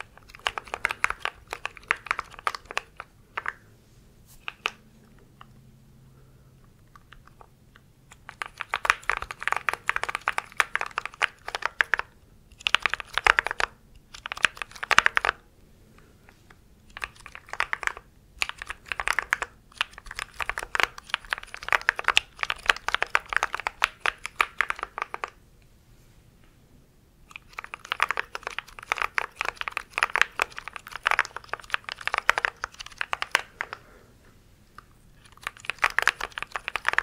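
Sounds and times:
mechanical keyboard typing: 0:00.0 - 0:03.6, 0:08.1 - 0:15.4, 0:16.9 - 0:25.4, 0:27.3 - 0:33.8, 0:35.2 - 0:37.0.

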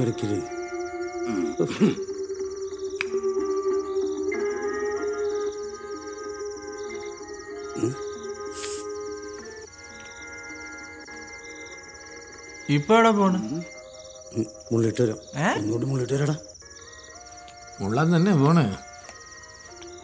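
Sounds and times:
crickets chirping: 0:00.0 - 0:20.0
film score long held notes: 0:00.0 - 0:20.0.

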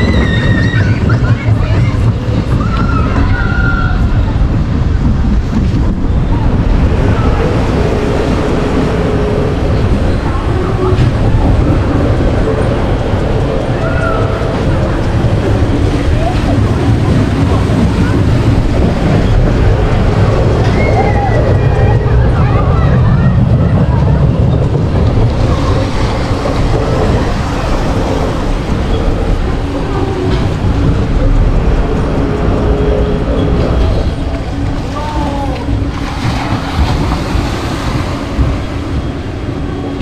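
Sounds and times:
faint voices: 0:00.0 - 0:40.0
ride machinery rumble: 0:00.0 - 0:40.0.

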